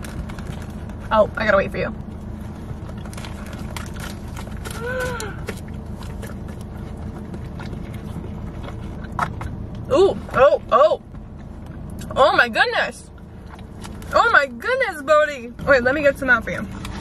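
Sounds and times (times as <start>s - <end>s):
steady low hum in car: 0.0s - 17.0s
dog chewing food: 2.4s - 4.8s, 5.4s - 9.9s.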